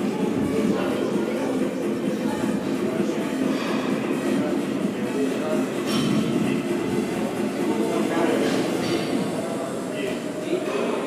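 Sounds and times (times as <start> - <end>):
background music: 0.0 - 11.0
voices echoing in a hall: 0.0 - 11.0.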